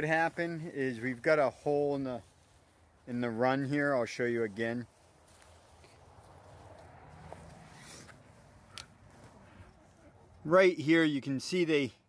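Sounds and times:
brief scrape: 7.4s - 8.2s.

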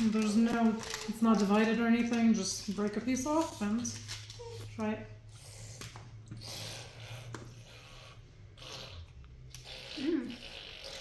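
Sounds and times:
chocolate wrapper rustling: 0.0s - 4.8s.

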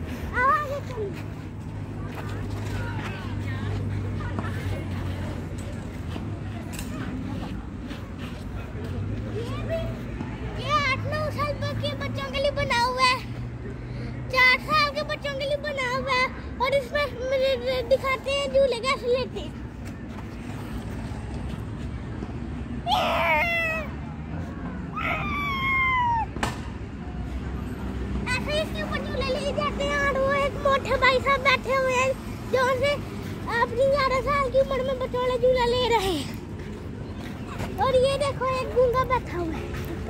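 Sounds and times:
faint voices: 0.0s - 40.0s.

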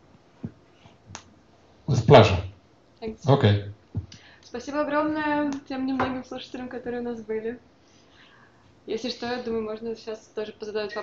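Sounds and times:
microphone handling clicks: 3.9s - 4.2s.

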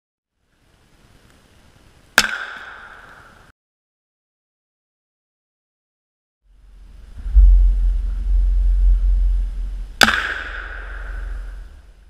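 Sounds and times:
rifle shot hitting steel: 2.2s - 3.1s, 10.0s - 11.6s
steady low rumble: 6.5s - 12.0s.

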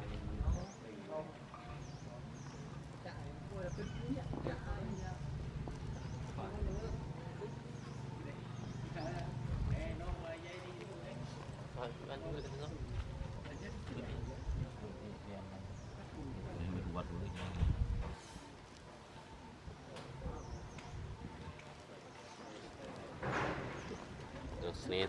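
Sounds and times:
people talking: 0.0s - 25.0s.

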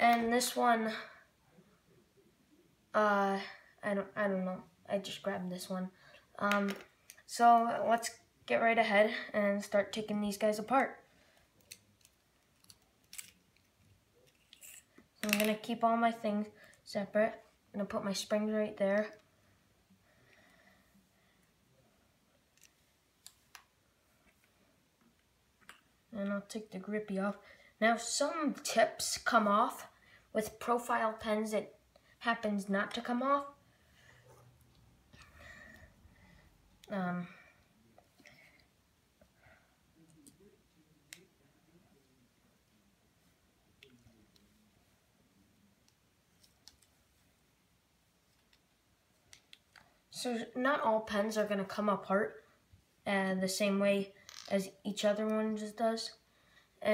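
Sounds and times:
plastic pen parts clicking: 11.6s - 15.6s.

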